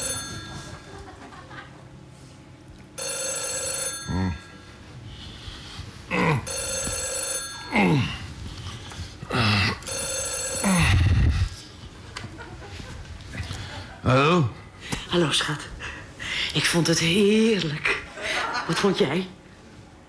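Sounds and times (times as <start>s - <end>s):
telephone ringing: 0.0s - 1.2s, 3.0s - 4.8s, 6.4s - 8.3s, 9.8s - 11.3s.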